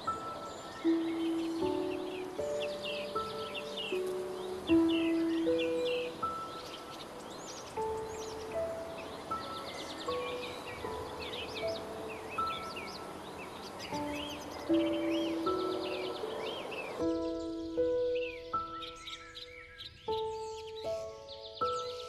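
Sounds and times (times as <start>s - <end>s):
slow piano melody: 0.0s - 22.0s
songbirds chirping: 0.0s - 22.0s.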